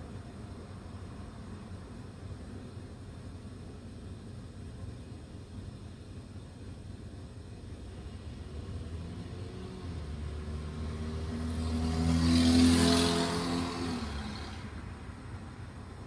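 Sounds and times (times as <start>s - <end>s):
vehicle passing by: 8.0s - 15.1s.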